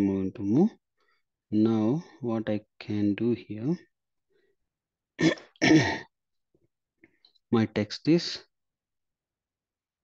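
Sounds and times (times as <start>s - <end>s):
man coughing: 5.2s - 6.2s.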